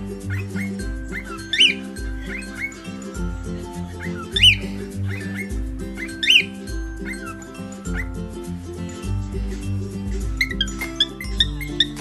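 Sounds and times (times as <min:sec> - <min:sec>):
bird chirps: 0:00.0 - 0:08.4, 0:10.2 - 0:12.0
music with bass beat: 0:00.0 - 0:12.0
cockatiel whistling: 0:00.2 - 0:08.2, 0:10.4 - 0:12.0.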